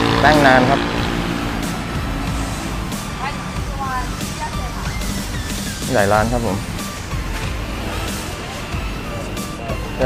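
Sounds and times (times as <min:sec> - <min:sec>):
steady low rumble: 0:00.0 - 0:09.2
background music: 0:00.0 - 0:10.0
faint voices: 0:02.8 - 0:10.0.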